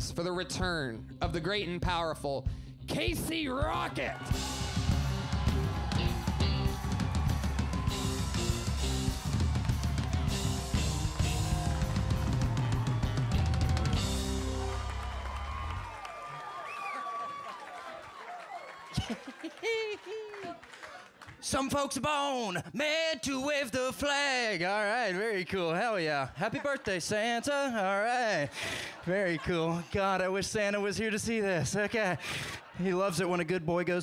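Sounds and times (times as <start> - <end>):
live band playing: 3.1 - 15.9
crowd noise and shouts: 3.6 - 19.2.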